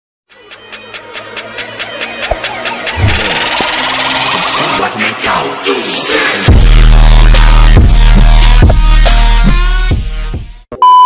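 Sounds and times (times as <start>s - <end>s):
rising whoosh: 2.9s - 4.6s
deep boom: 3.0s - 3.6s.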